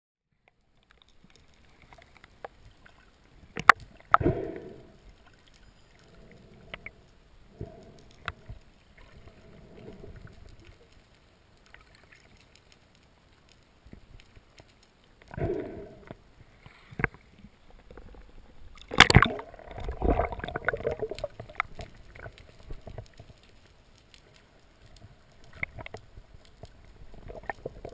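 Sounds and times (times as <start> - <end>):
faint water wash: 1.1 - 27.9
underwater clicks and knocks: 3.5 - 4.4, 17.8 - 23.6
rushing water: 15.2 - 23.6.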